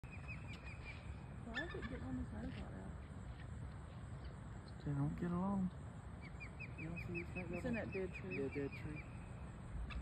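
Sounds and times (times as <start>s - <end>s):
bird high whistled chirps: 0.0s - 1.8s.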